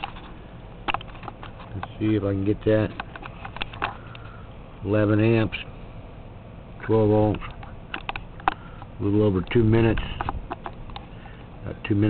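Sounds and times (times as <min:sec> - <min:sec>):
low steady hiss: 0:00.0 - 0:12.0
faint irregular clicks and pops: 0:07.3 - 0:11.5.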